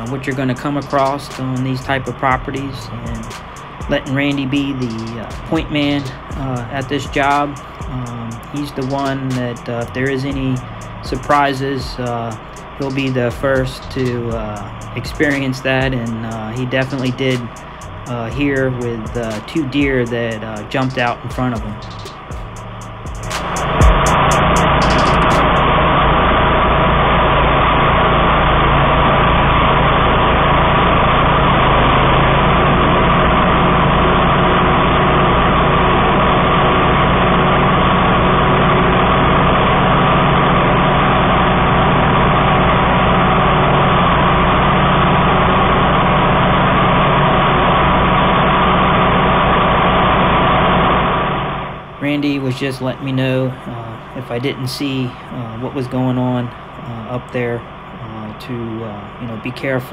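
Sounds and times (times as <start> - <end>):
mower engine deep drone: 0.0 - 59.9.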